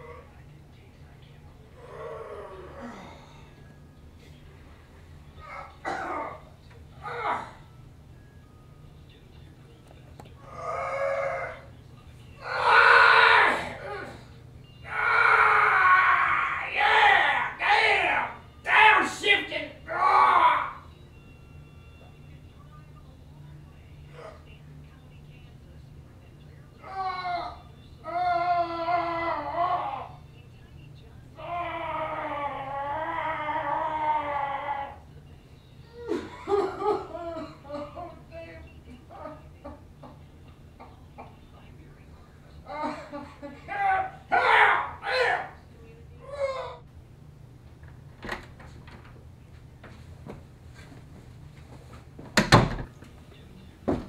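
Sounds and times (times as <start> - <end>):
man groaning and yelling: 14.9 - 20.8.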